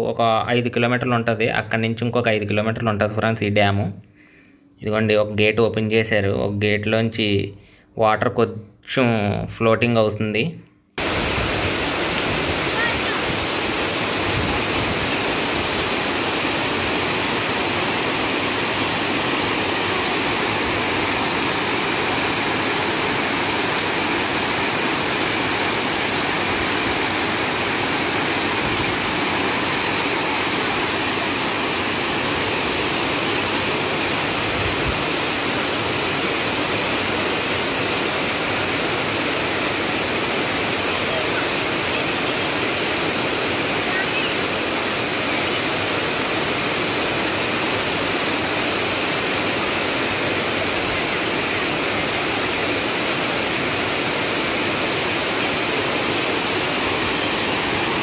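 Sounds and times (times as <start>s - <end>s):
water rushing through spillway: 11.0s - 58.0s.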